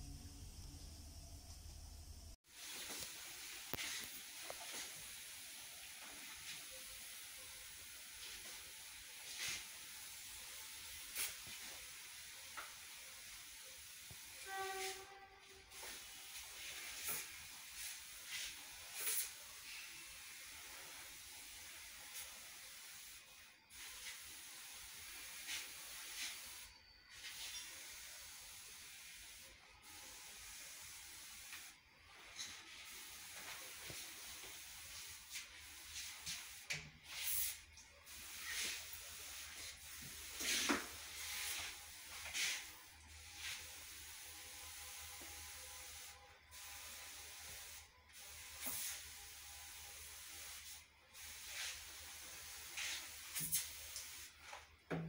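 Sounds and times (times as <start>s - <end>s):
pressure sprayer hissing: 2.5s - 54.6s.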